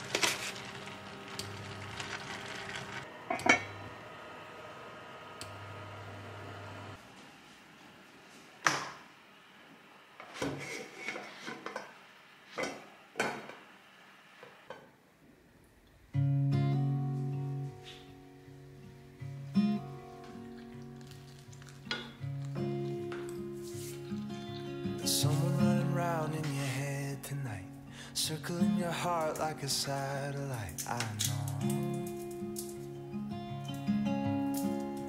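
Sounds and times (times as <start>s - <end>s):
acoustic guitar music: 16.1s - 35.0s.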